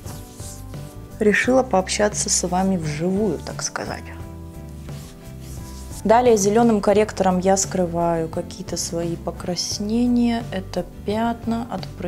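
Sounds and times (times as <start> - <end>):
fingertips rubbing skin: 0.0 - 1.2, 4.6 - 6.1
soft background music: 0.0 - 12.0.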